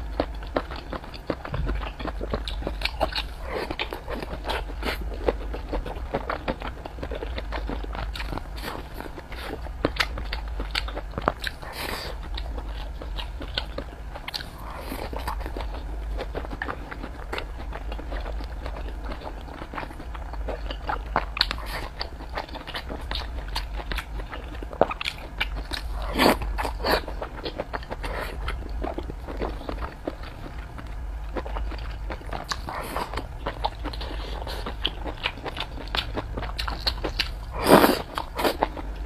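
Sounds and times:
person chewing food: 0.0 - 39.0
steady low hum: 0.0 - 39.0.

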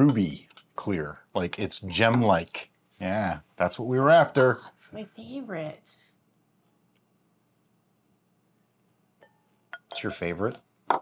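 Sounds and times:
wine glass clink: 1.9 - 2.4, 9.2 - 11.0.

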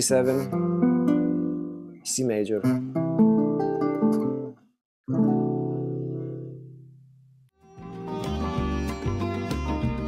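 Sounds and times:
acoustic guitar chords: 0.3 - 2.0, 2.6 - 10.0.

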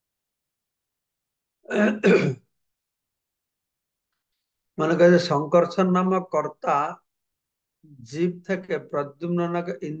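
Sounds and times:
man clearing his throat: 1.7 - 2.5.

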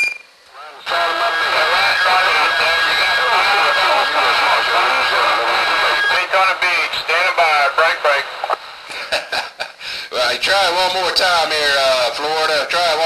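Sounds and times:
short beep: 0.0 - 0.3
garbled radio voices: 0.5 - 9.1.

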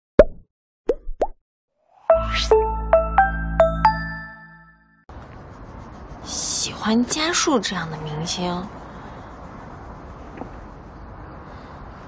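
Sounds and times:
cartoon plop pops: 0.2 - 1.4.

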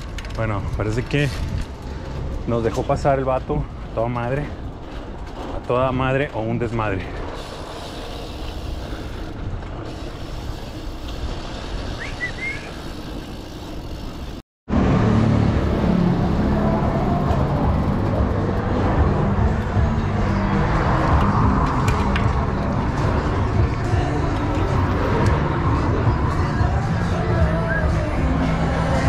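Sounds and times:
bike rolling on pavement: 0.0 - 29.0
street traffic: 0.0 - 29.0.

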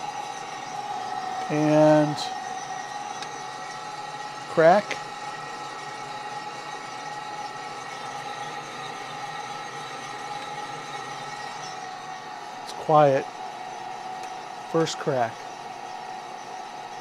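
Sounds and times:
coffee roaster humming and hissing: 0.0 - 17.0.

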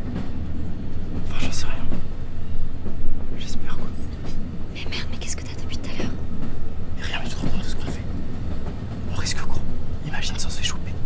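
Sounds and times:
train carriage rumble: 0.0 - 11.0
people whispering: 1.2 - 2.1, 3.3 - 6.2, 6.9 - 8.2, 9.0 - 11.0.

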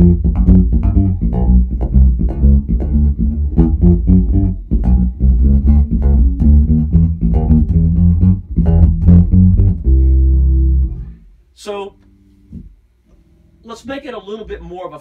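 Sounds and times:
electric bass plucked notes: 0.0 - 11.2.

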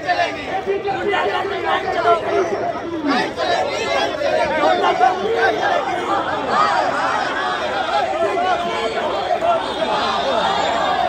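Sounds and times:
crowd talking and calling out: 0.0 - 11.0.

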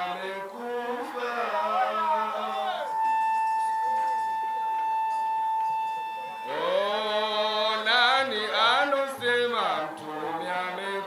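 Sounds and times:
man singing into a microphone: 0.0 - 3.0, 6.5 - 11.0.

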